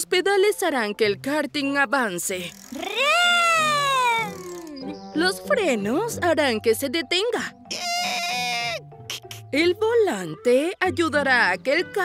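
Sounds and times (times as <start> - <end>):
cartoon child's voice ooh: 2.8 - 4.8.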